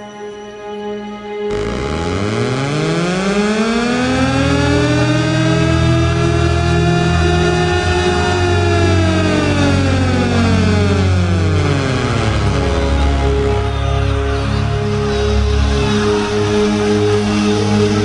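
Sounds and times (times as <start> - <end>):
low held music notes: 1.4 - 18.0
rising and falling pitched tone: 1.5 - 14.3.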